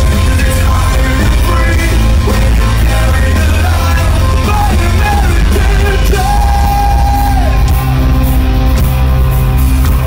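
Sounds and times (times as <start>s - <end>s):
rock band playing live: 0.0s - 10.0s
singer yelling into microphone: 3.6s - 8.0s.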